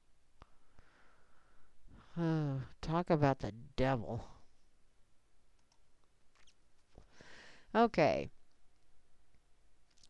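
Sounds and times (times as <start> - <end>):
computer mouse clicks: 5.6 - 5.8.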